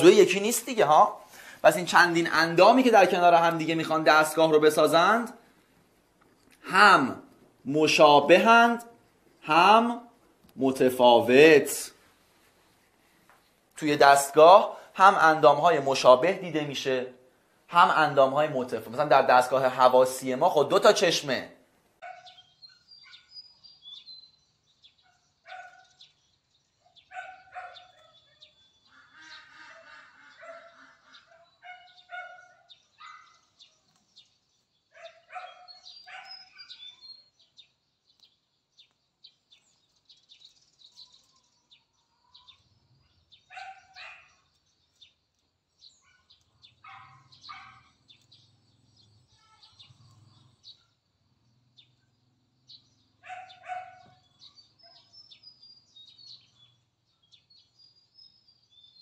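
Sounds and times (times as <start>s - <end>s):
birds chirping: 0.0s - 59.0s
dog barking: 22.0s - 23.3s, 25.0s - 26.0s, 26.9s - 28.4s, 29.8s - 33.5s, 34.9s - 36.8s, 43.5s - 44.4s, 46.0s - 48.0s, 53.2s - 54.2s.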